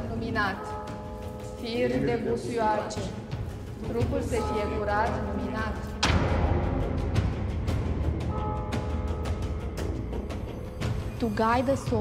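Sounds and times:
background music with held tones: 0.0 - 12.0
person speaking: 1.6 - 3.2.

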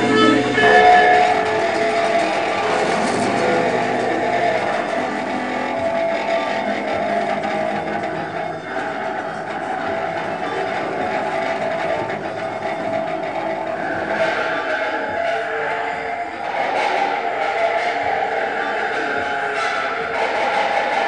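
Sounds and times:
bowed wire drone: 0.0 - 21.0.

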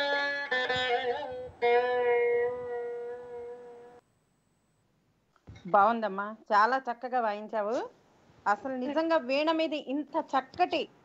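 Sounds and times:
plucked veena note ringing: 0.0 - 4.0.

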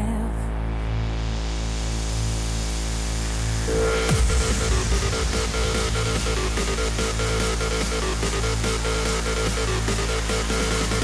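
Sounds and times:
sustained synth chords: 0.0 - 11.0
bright synth line: 3.2 - 11.0.

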